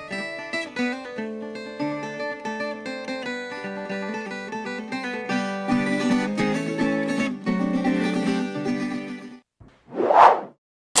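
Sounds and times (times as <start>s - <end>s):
plucked string music: 0.0s - 9.3s
whoosh sound effect: 9.9s - 10.6s.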